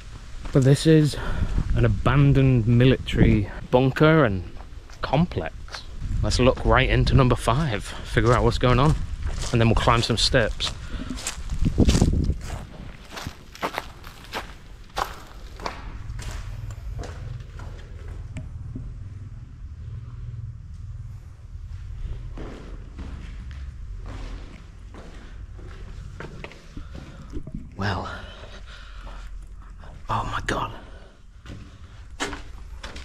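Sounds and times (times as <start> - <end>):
steady low rumble: 0.0 - 33.0
footsteps on leaves and dirt: 5.7 - 18.3, 21.6 - 27.2
footsteps on concrete: 7.9 - 18.8, 21.7 - 27.4.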